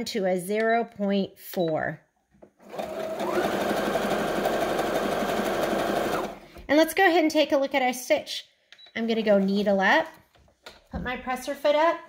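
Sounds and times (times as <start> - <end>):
sewing machine sewing: 2.6 - 6.4.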